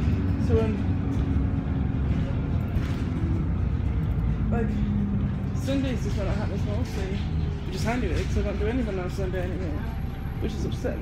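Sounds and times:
bus engine rumble: 0.0 - 11.0.

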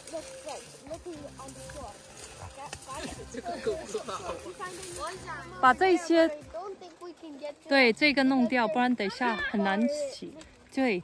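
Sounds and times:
crawling through crackling leaves: 0.0 - 11.0
twig snapping click: 1.0 - 3.2.

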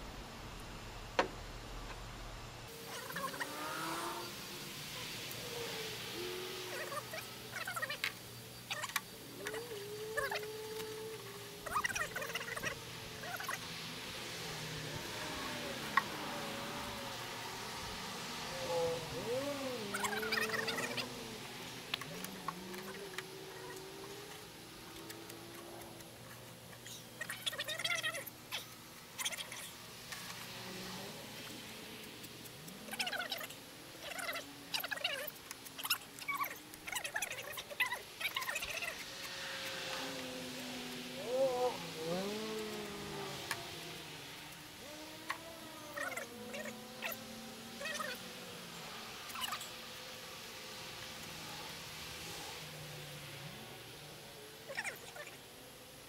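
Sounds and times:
wavering whine: 0.0 - 56.0.

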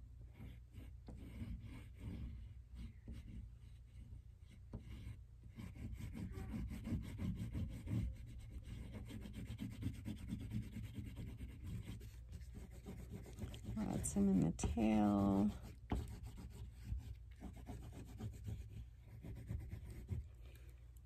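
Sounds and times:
oil pastel rubbing on paper: 0.3 - 20.8.

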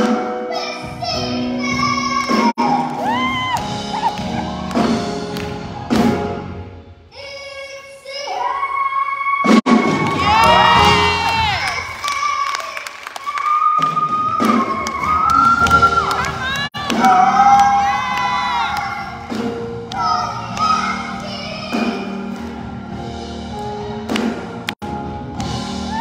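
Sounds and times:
audience cheering and shouting: 1.9 - 6.3, 8.3 - 19.5, 25.7 - 26.0.

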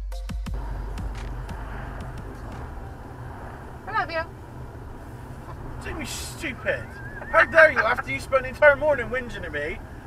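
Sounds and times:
car cabin engine and road rumble: 0.5 - 10.0.

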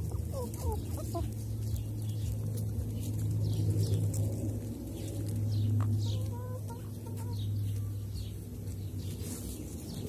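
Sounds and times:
hens clucking: 0.0 - 10.0.

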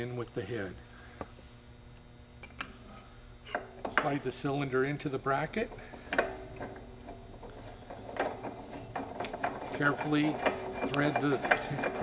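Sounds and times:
metal scrape: 7.1 - 12.0.

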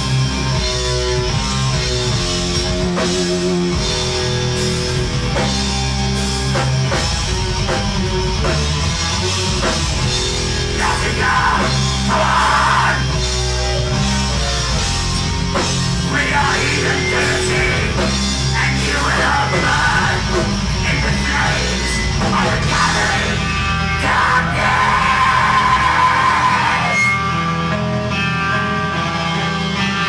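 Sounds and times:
metal band playing live: 0.0 - 30.0.

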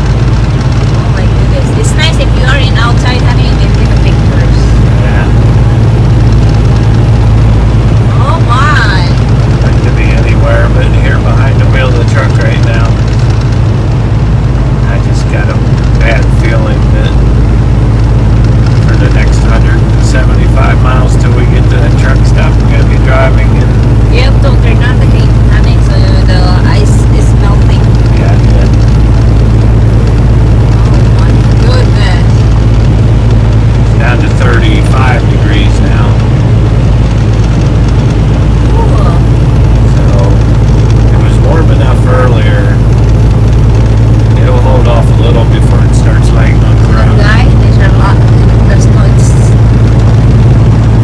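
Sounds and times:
road noise: 0.0 - 51.0
truck engine drone: 0.0 - 51.0.

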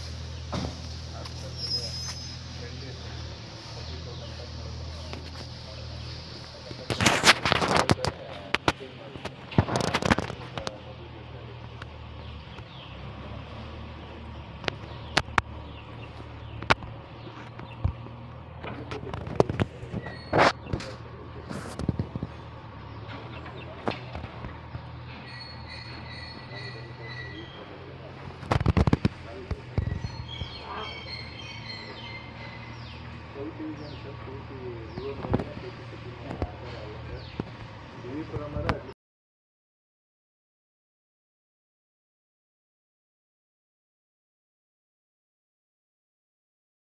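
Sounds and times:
birds chirping: 0.0 - 39.0
sharp cracks and pops: 6.9 - 10.8, 28.4 - 29.9.

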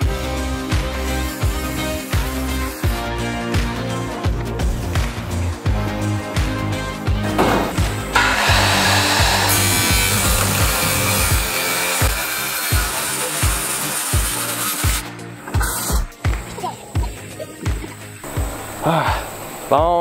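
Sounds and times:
background music with steady beat: 0.0 - 20.0
circular saw cutting metal sheet: 8.1 - 16.0.

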